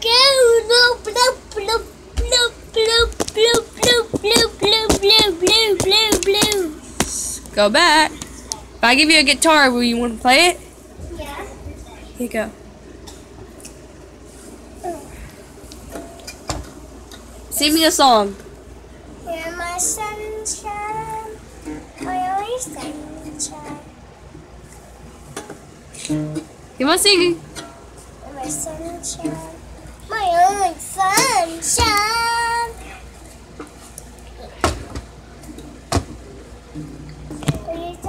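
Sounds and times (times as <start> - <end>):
faint room noise: 0.0 - 38.0
acoustic guitar handling bumps: 2.2 - 7.2, 34.5 - 38.0
acoustic guitar strum: 26.0 - 26.6.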